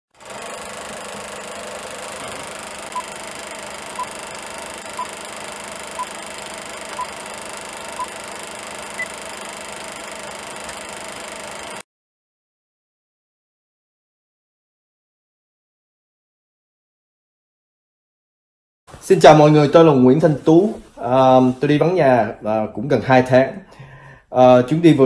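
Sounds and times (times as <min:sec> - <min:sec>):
film projector whir and rattle: 0:00.1 - 0:11.8
short countdown beeps: 0:02.9 - 0:03.1, 0:04.0 - 0:04.2, 0:04.9 - 0:05.2, 0:06.0 - 0:06.2, 0:06.9 - 0:07.2, 0:07.9 - 0:08.2.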